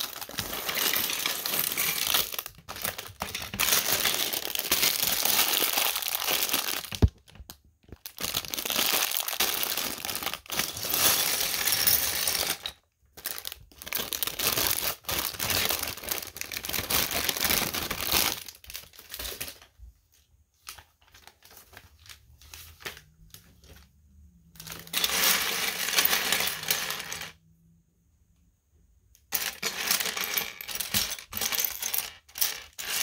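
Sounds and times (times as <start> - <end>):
plastic bags crinkling: 0.0 - 19.7.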